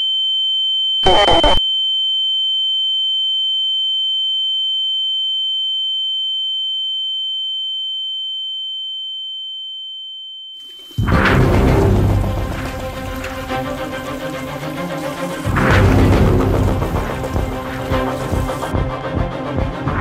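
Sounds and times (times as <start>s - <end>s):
high-pitched ringing sine tone: 0.0s - 11.1s
short harsh noise burst: 1.0s - 1.6s.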